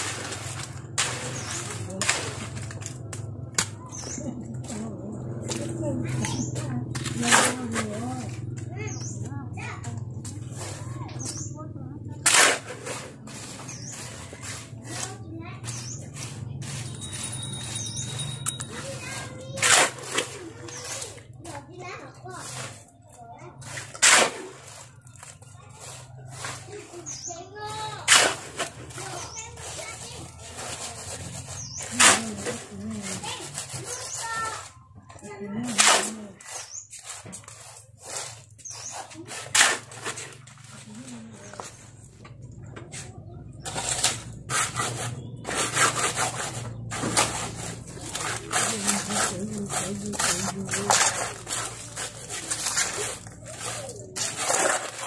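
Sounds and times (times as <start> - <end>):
shovel scrapes: 0.0 - 11.5, 12.2 - 34.8, 35.6 - 42.2, 42.9 - 55.0
hoe scraping wet concrete: 0.0 - 55.0.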